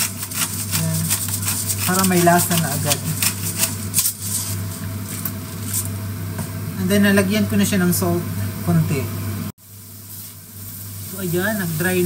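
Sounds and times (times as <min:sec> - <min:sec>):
pepper grinder crushing peppercorns: 0:00.0 - 0:05.9
steady low hum: 0:00.0 - 0:12.0.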